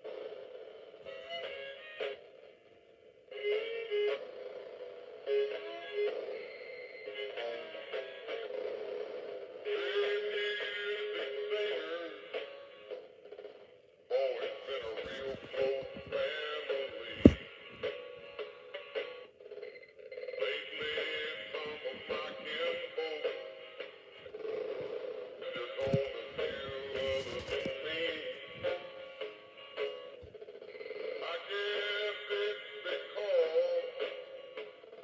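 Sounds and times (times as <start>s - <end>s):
man singing through tinny speaker: 9.7s - 12.6s, 14.1s - 18.0s, 20.4s - 24.2s, 25.4s - 29.2s, 31.0s - 34.7s.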